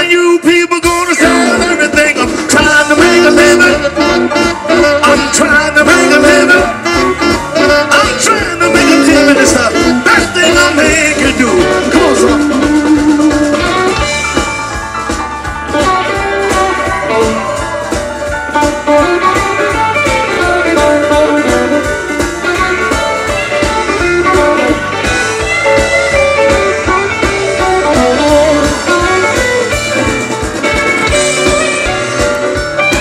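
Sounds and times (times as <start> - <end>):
blues band playing: 0.0 - 33.0
electric guitar: 0.0 - 33.0.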